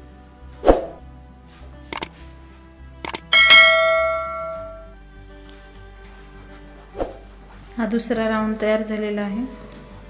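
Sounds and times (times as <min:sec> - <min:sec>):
soft background music: 0:00.0 - 0:10.0
mouse clicks: 0:03.0 - 0:03.3
notification bell ding: 0:03.1 - 0:04.9.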